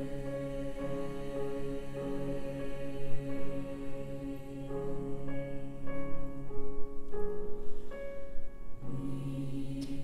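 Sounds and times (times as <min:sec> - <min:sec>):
choir singing held chords: 0:00.0 - 0:06.6, 0:08.8 - 0:10.0.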